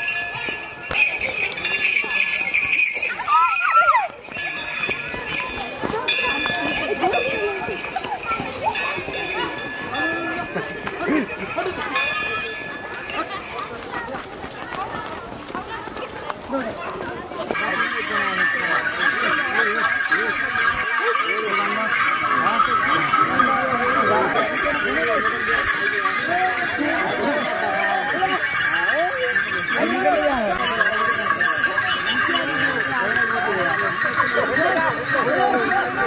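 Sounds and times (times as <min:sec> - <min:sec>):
footsteps on stony path: 0:00.0 - 0:20.9
crowd chatter: 0:00.0 - 0:36.0.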